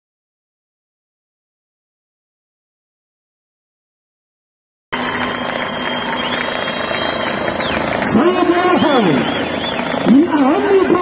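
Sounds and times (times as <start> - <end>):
faint hum: 5.0 - 11.0
man speaking: 10.1 - 11.0.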